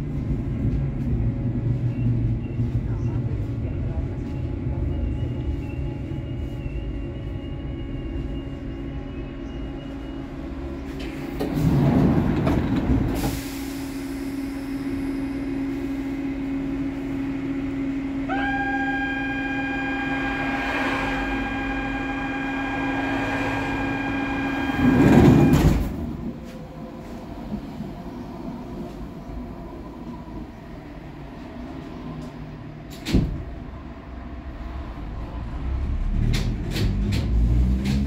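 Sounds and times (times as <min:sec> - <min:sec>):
train doors shutting: 0:08.5 - 0:16.9, 0:17.8 - 0:30.3, 0:31.4 - 0:33.8, 0:35.8 - 0:38.0
rush of air from train doors: 0:10.9 - 0:16.2
high warning tone: 0:17.8 - 0:25.8.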